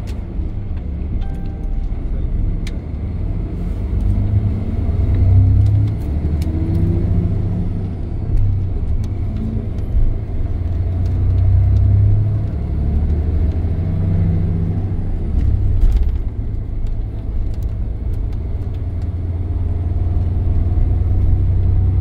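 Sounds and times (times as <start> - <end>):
bus engine drone: 0.0 - 22.0
road rumble: 0.0 - 22.0.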